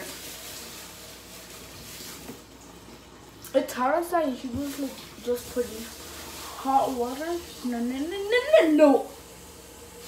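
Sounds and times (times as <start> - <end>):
tap water running into sink: 0.0 - 10.0.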